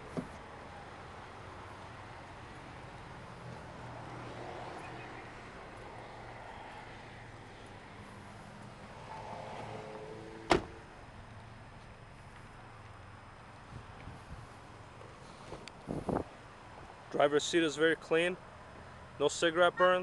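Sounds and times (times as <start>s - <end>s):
car door shutting: 10.4s - 10.8s.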